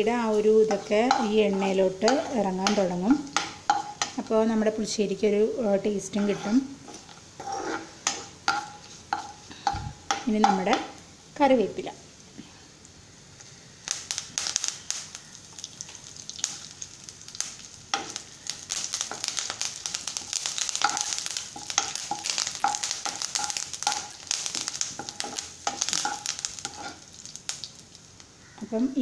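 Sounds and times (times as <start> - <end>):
sizzling and crackling oil: 0.0 - 29.0
spoon stirring: 0.3 - 4.2, 6.1 - 10.7, 18.0 - 27.2.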